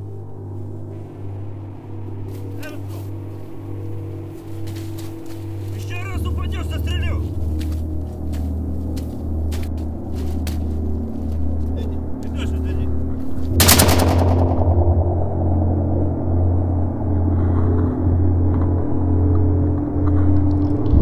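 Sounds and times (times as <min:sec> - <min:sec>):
low pulsing drone: 0:00.0 - 0:21.0
loud burst of gunfire: 0:13.6 - 0:14.9
sharp cracks: 0:13.6 - 0:15.3.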